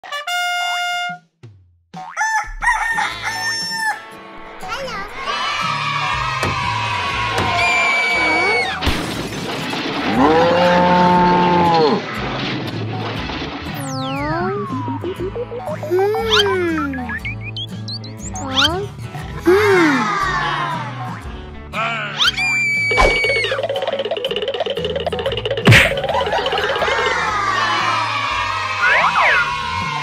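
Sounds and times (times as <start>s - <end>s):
upbeat children's music: 2.0s - 8.6s, 13.6s - 30.0s
cartoon character vocal noises: 13.8s - 17.6s, 18.2s - 21.2s
falling whistle: 22.2s - 23.6s.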